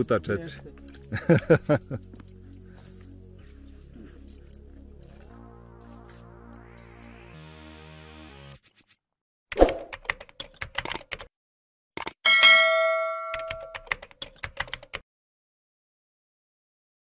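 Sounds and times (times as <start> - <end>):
quick clicks: 12.0 - 12.2
bell-like ding: 12.3 - 13.8.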